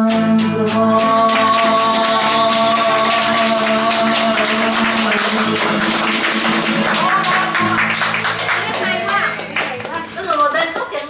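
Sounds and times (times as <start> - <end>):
man singing a long note: 0.0 - 6.0
acoustic guitar strummed: 0.0 - 10.8.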